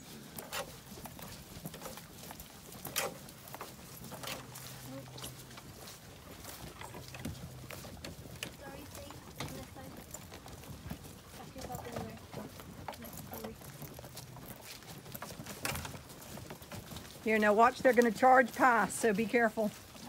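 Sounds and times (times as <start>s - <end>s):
footsteps of rubber boots in grass: 0.0s - 20.0s
wheelbarrow rattling: 0.0s - 20.0s.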